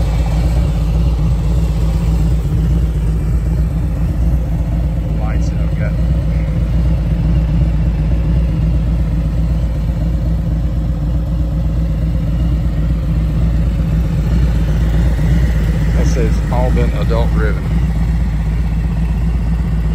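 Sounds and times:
motorcycle engine idling: 0.0 - 19.9.

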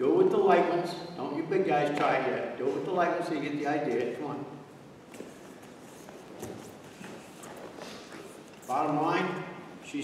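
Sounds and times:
soft footfalls on mats: 5.0 - 8.7.

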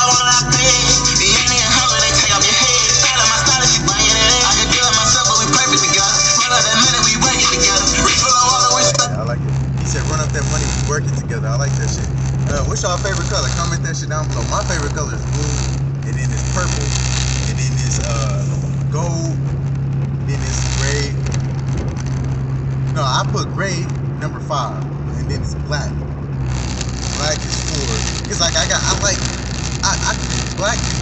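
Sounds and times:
music playing: 0.0 - 9.2
person talking: 0.0 - 16.9, 27.2 - 31.0
car engine drone: 0.0 - 31.0
road noise: 0.0 - 31.0.

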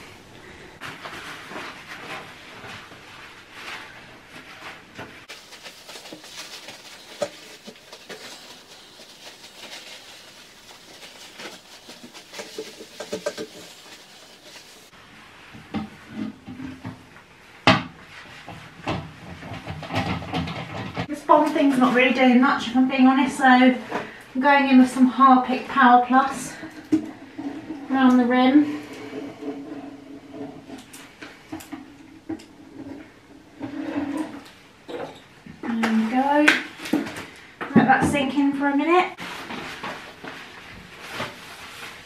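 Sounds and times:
rubbing and rustling on toilet: 0.8 - 34.8, 39.1 - 42.0
steady hiss: 5.2 - 14.9.

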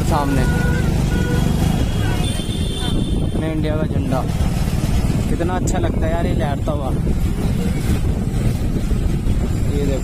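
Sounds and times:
motorcycle engine rumble: 0.0 - 10.0
surrounding traffic: 0.0 - 10.0
wind buffeting microphone: 0.7 - 10.0.

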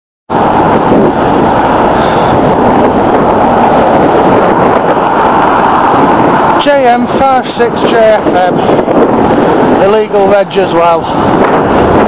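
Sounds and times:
road noise: 0.3 - 12.0
wind buffeting microphone: 0.3 - 12.0.

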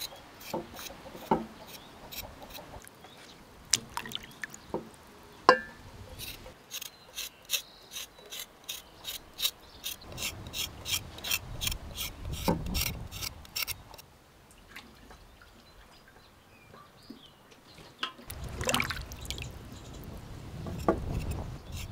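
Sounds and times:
water dripping: 3.6 - 5.8, 18.3 - 20.2
knife scraping potato skin: 6.2 - 13.8, 20.8 - 21.9.

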